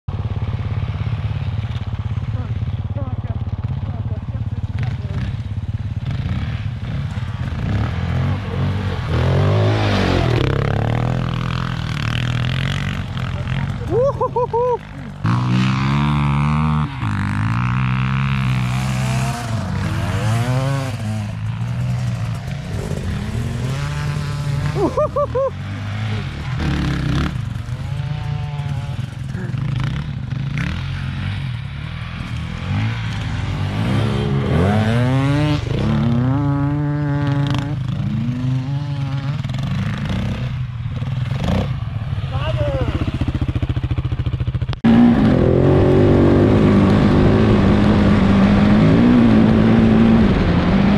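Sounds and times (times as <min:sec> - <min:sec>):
motorcycle engines revving: 0:00.1 - 0:50.9.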